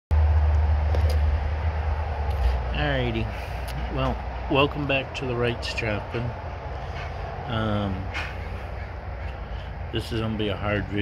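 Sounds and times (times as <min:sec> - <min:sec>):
vehicle engine idling: 0:00.2 - 0:11.0.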